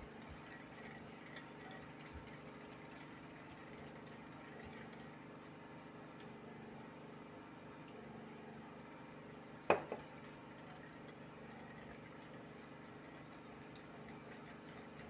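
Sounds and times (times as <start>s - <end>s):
whisk stirring batter in bowl: 0.0s - 5.4s, 9.8s - 15.0s
steady low hum: 0.0s - 15.0s.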